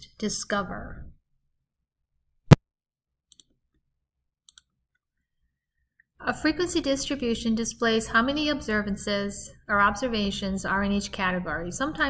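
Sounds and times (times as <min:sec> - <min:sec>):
computer mouse clicks: 0:03.3 - 0:03.5, 0:04.5 - 0:04.7.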